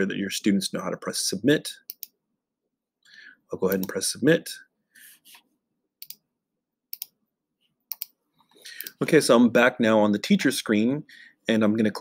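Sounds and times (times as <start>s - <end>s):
computer mouse clicks: 1.9s - 2.2s, 3.7s - 4.0s, 6.0s - 6.2s, 6.9s - 7.2s, 7.9s - 8.2s, 8.8s - 9.0s.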